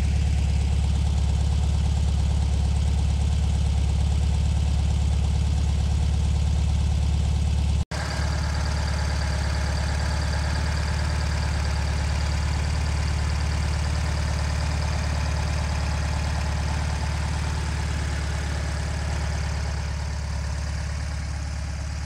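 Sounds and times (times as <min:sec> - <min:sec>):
car engine idling: 0:00.0 - 0:22.0.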